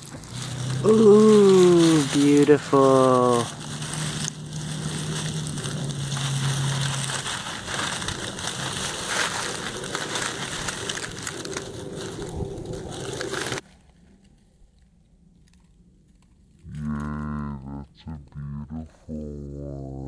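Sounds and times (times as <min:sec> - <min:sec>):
pine needles crunching under hand: 0:00.0 - 0:14.7.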